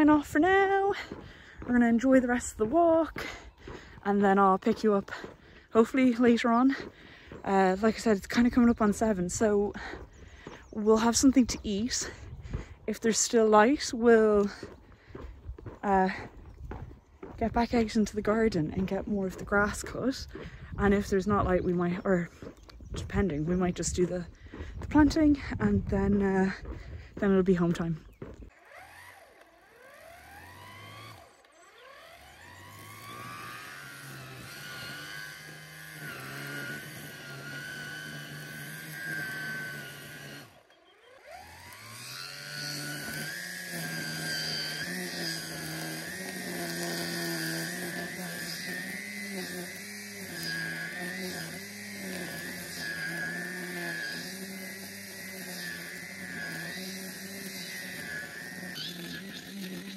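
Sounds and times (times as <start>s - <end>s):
grass trimmer whining: 0.0s - 59.9s.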